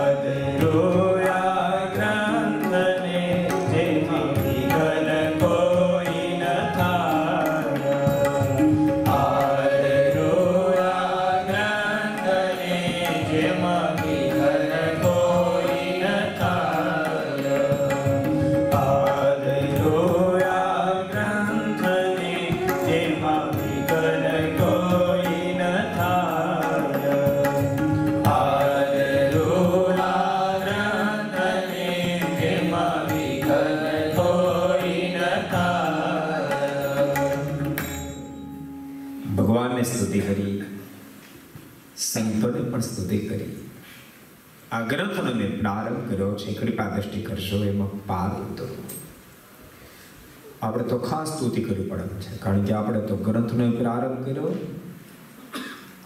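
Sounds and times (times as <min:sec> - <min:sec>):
chant-like singing: 0:00.0 - 0:37.8
bowed violin: 0:00.0 - 0:40.5
barrel drum and tabla: 0:00.0 - 0:40.6
musical accompaniment: 0:00.0 - 0:42.0.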